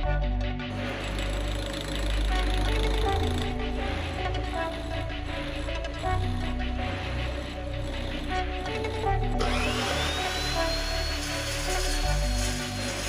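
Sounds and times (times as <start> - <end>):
background music: 0.0 - 13.0
chop saw cutting steel: 0.7 - 13.0.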